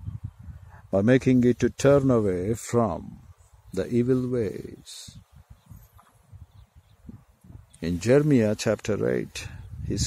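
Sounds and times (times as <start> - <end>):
faint low thumps and rumble: 5.2 - 7.8.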